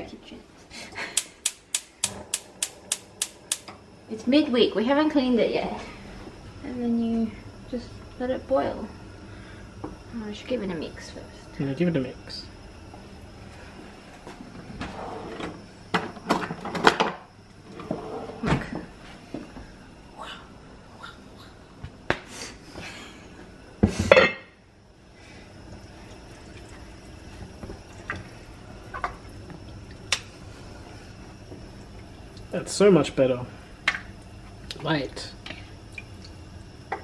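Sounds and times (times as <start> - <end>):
cabinet door opening and shutting: 16.3 - 18.9.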